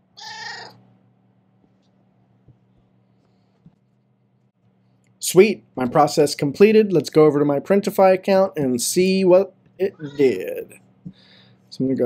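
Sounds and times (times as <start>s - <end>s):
cat meowing: 0.2s - 0.8s, 9.9s - 10.4s.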